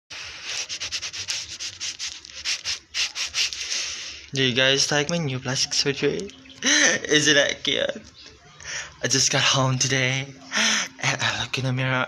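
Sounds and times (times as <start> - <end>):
rapid rubbing strokes: 0.1 - 4.2.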